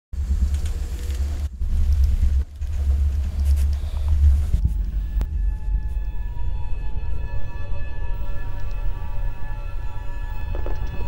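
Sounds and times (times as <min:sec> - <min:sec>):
deep low rumble: 0:00.2 - 0:11.0.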